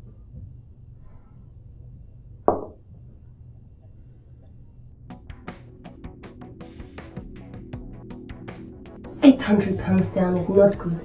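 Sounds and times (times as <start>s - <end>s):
low steady hum: 0.0s - 5.1s.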